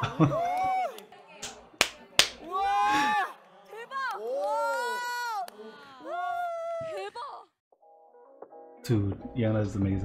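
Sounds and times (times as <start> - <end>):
laughter: 0.0 - 0.5
sharp hand claps: 0.6 - 2.4.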